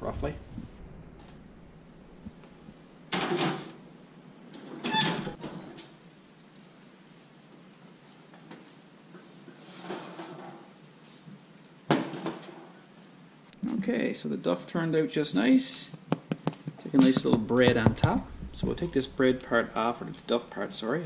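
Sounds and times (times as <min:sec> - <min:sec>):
sharp knock: 0:16.2 - 0:19.8.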